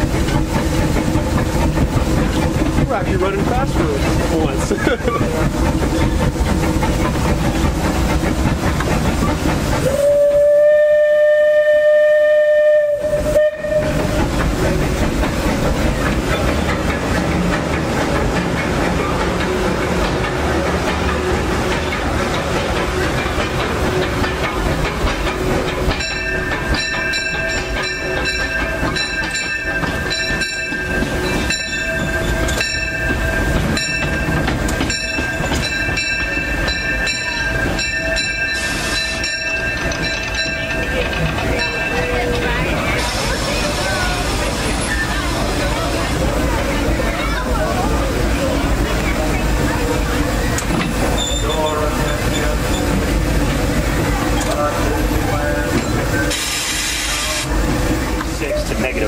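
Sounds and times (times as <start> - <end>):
train rumble and clatter on track: 0.0 - 59.0
steam locomotive whistle: 9.8 - 14.2.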